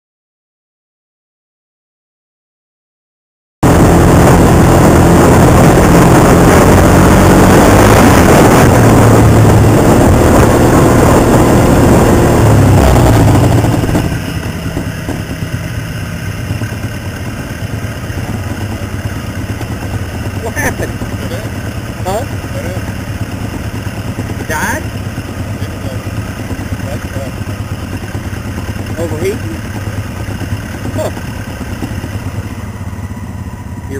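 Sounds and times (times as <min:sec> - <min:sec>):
rushing noise on microphone: 0:03.6 - 0:32.6
off-road vehicle engine: 0:03.6 - 0:33.9.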